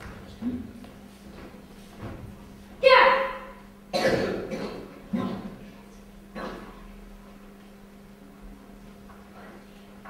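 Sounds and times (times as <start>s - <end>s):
child shouting: 2.8s - 3.6s.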